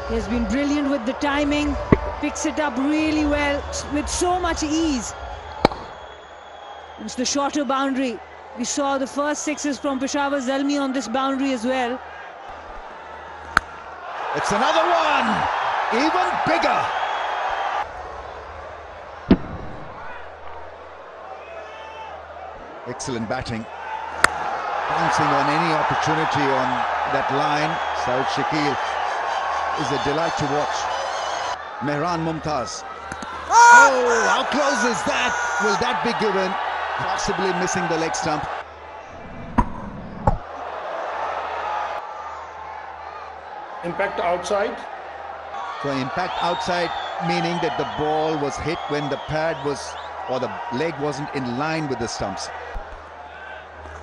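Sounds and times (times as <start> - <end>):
cricket bat striking ball: 1.8 - 2.2, 5.6 - 6.0, 24.2 - 24.4
stadium crowd murmuring: 7.0 - 39.2.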